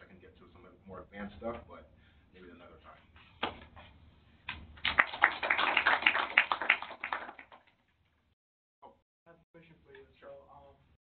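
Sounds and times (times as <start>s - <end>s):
audience applauding: 4.8s - 7.7s.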